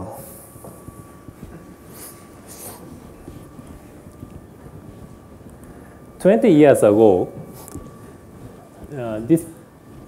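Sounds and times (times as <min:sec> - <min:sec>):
faint hum: 0:00.0 - 0:10.0.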